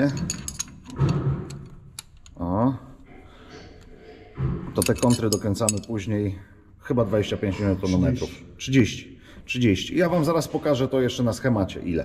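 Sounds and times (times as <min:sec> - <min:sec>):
metal spanner clicks and clinks: 0:00.0 - 0:02.4, 0:04.8 - 0:06.1.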